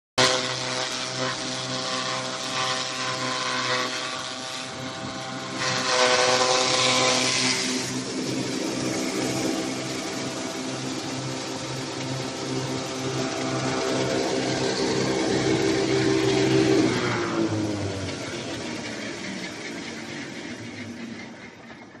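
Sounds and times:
chaff cutter humming: 0:00.2 - 0:21.9.

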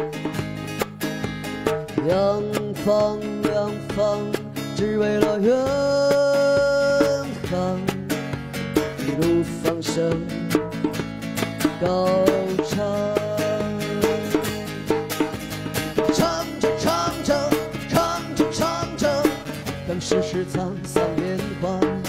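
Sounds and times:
strummed acoustic guitar: 0:00.0 - 0:22.0
man singing: 0:01.9 - 0:10.9, 0:11.6 - 0:15.0, 0:16.0 - 0:22.0.

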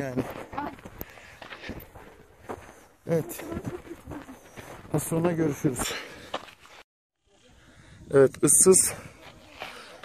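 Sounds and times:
footsteps on dirt trail: 0:00.0 - 0:06.9, 0:09.0 - 0:10.0.

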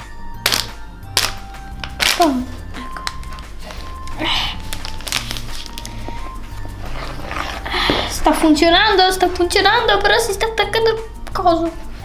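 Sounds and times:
background music: 0:00.0 - 0:12.0
metal spoon scraping plastic bowl: 0:05.4 - 0:08.7.

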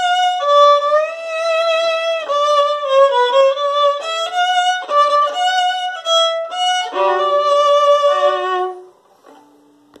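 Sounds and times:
violin notes bowed and held: 0:00.0 - 0:09.0.

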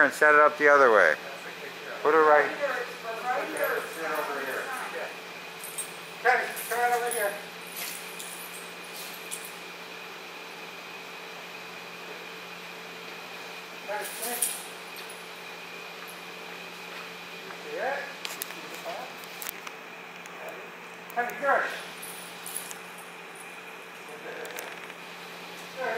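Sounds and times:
electrical fan hum: 0:00.0 - 0:25.9.

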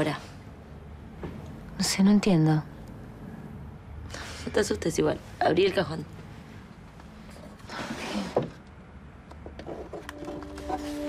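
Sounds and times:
soft background music: 0:10.1 - 0:11.0.

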